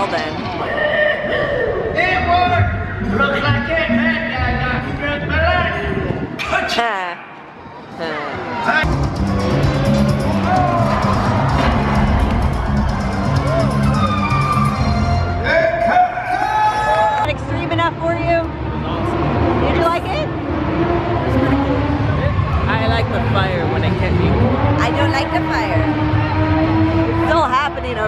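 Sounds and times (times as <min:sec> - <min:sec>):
music over loudspeakers: 0:08.8 - 0:15.6.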